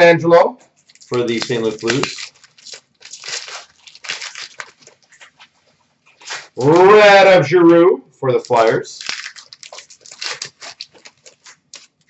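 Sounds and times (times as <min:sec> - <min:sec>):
cards being handled: 0:00.7 - 0:07.0, 0:08.4 - 0:12.0
foil wrapper crinkling: 0:00.7 - 0:07.1, 0:08.4 - 0:12.0.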